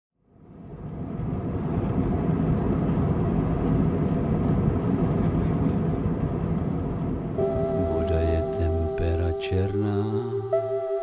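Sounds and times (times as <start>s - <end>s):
jet cabin rumble: 0.8s - 9.4s.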